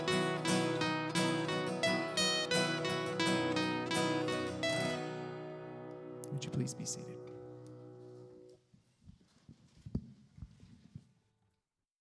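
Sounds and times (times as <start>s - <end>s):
people shuffling in seats: 8.0s - 11.2s.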